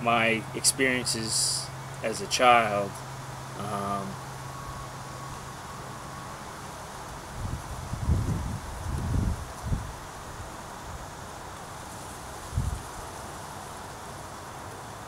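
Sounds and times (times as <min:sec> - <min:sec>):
outdoor background hiss: 0:00.0 - 0:15.0
wind buffeting microphone: 0:07.2 - 0:11.1, 0:12.4 - 0:13.0.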